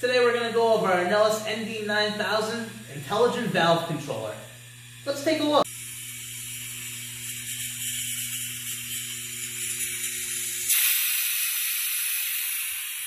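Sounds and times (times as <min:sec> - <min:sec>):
steady low hum: 0:00.0 - 0:10.8
compressed air hissing: 0:02.4 - 0:13.0.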